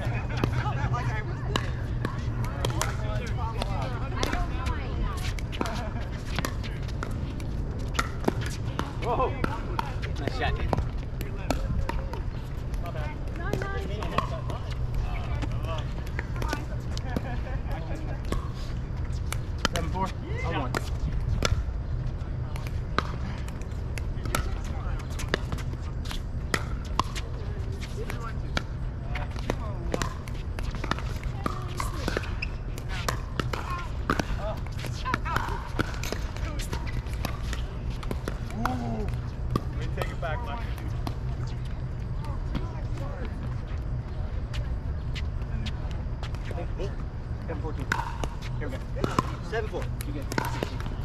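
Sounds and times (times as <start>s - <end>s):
ball bouncing on hard court: 1.5s - 43.6s, 47.6s - 51.0s
paddles hitting plastic ball: 22.6s - 41.3s, 47.8s - 51.0s.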